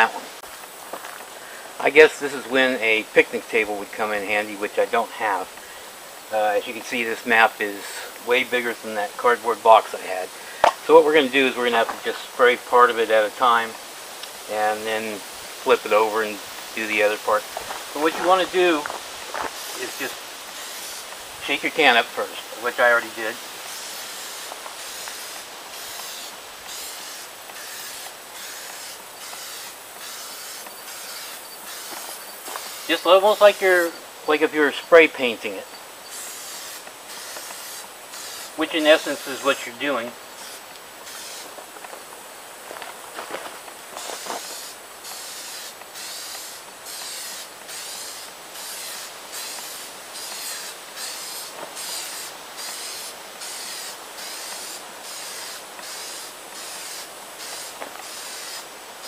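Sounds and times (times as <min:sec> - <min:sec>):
aerosol can spraying hiss: 0:00.1 - 0:04.5, 0:11.5 - 0:42.6, 0:43.7 - 0:59.0.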